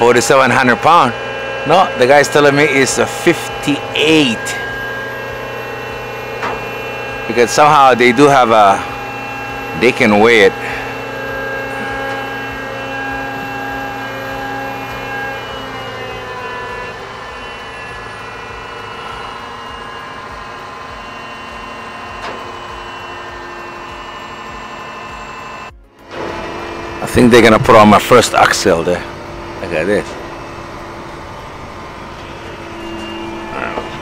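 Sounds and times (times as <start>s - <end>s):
crane diesel engine running: 0.0s - 34.0s.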